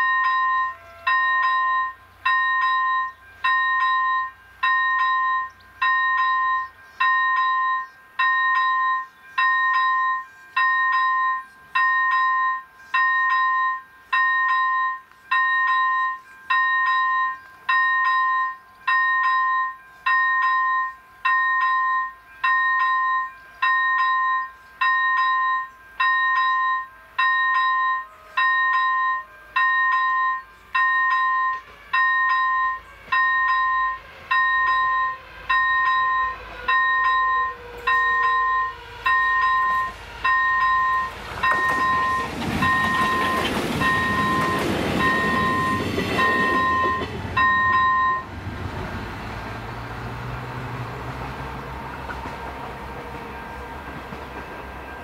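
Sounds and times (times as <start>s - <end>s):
level-crossing warning bell beeping: 0.0s - 48.4s, 51.2s - 55.0s
train running noise: 0.0s - 55.0s.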